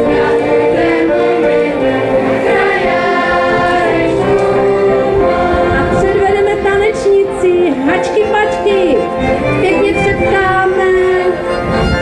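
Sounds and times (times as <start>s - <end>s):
girls' choir singing: 0.0s - 8.4s
violins playing: 0.0s - 12.0s.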